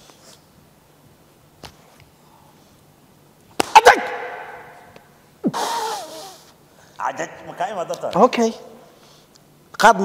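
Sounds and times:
hand slaps on card table: 0:03.6 - 0:04.0
man shouting: 0:03.6 - 0:04.9.

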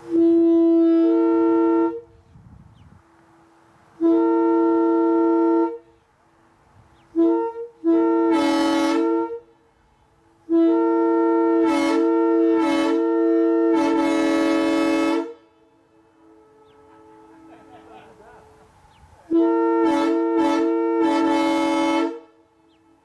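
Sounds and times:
locomotive air horn blasts: 0:00.0 - 0:02.4, 0:03.0 - 0:06.1, 0:07.1 - 0:23.0.

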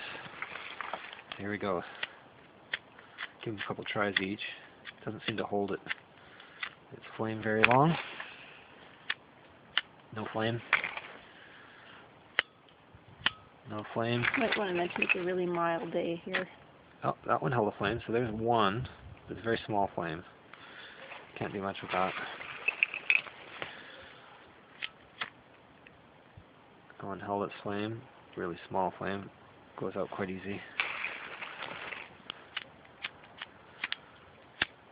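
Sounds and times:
lighter flint wheel scraping: 0:00.0 - 0:06.8
plastic lighters clicking together: 0:32.5 - 0:34.0.

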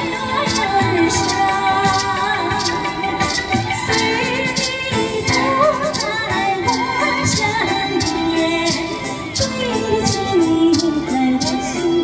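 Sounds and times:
backing track with percussion: 0:00.0 - 0:12.0
woman singing with vibrato: 0:00.0 - 0:12.0.

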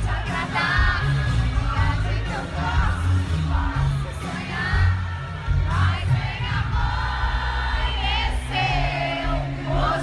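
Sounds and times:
crowd: 0:00.0 - 0:10.0
live band music with heavy bass: 0:00.0 - 0:10.0
woman singing into microphone: 0:00.0 - 0:10.0.

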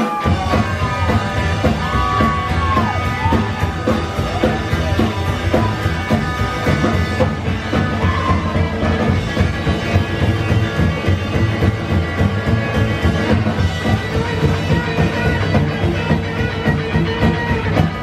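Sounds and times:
drums: 0:00.0 - 0:18.0
electric and acoustic guitars: 0:00.0 - 0:18.0
upright bass: 0:00.2 - 0:18.0.

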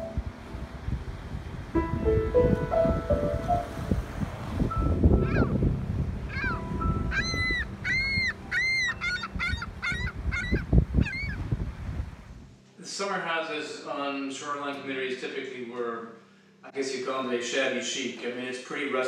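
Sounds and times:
wind buffeting microphone: 0:00.0 - 0:12.5
gull calling: 0:05.2 - 0:05.5, 0:06.3 - 0:11.4.

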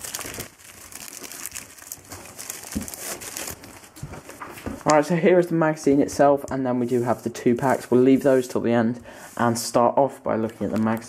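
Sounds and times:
plastic wrapper crinkling: 0:00.0 - 0:05.0, 0:10.4 - 0:11.0.

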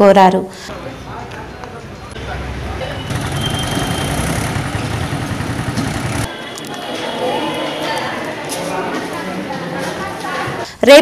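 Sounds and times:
vehicle engine rumbling: 0:00.8 - 0:06.8.

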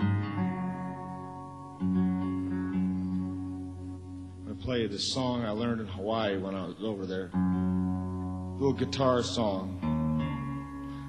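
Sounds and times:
guitar chord ringing: 0:00.0 - 0:11.0
man talking: 0:04.4 - 0:07.4, 0:08.6 - 0:09.9.

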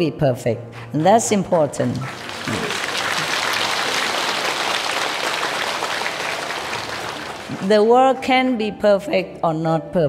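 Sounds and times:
large audience applauding: 0:02.0 - 0:07.8.

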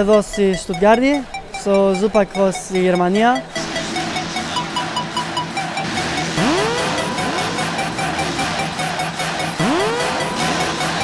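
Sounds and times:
electronic music with beat: 0:00.0 - 0:11.0
motocross bike engine revving: 0:03.6 - 0:11.0.

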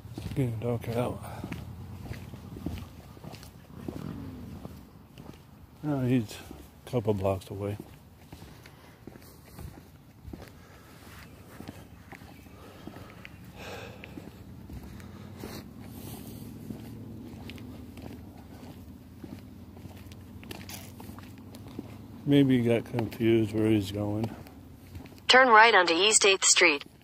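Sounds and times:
footsteps on pavement: 0:00.0 - 0:25.8.

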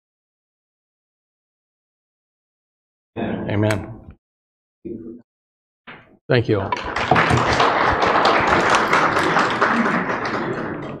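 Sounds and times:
audience applauding: 0:06.6 - 0:11.0.

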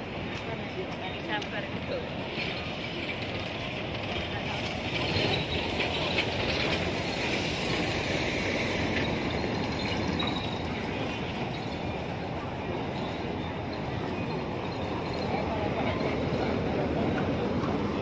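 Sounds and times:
traffic noise: 0:00.0 - 0:18.0
voices of passers-by: 0:00.0 - 0:18.0.

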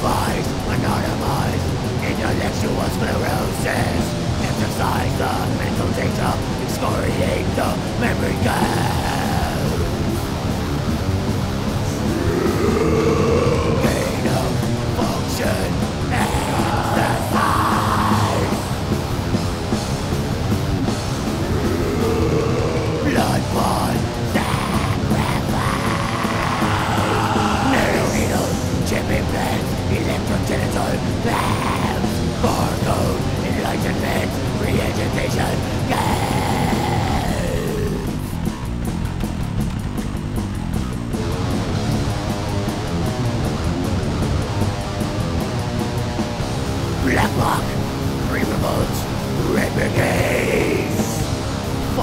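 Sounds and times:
death metal music: 0:00.0 - 0:52.0.

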